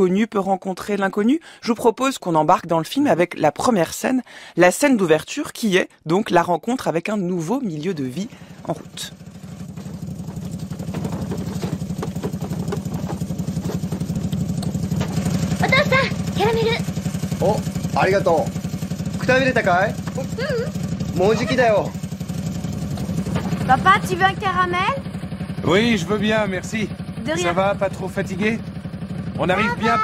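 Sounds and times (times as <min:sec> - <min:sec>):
small truck engine putt-putt: 0:08.3 - 0:27.2
children's voices: 0:15.6 - 0:16.9, 0:23.6 - 0:25.0, 0:29.4 - 0:30.0.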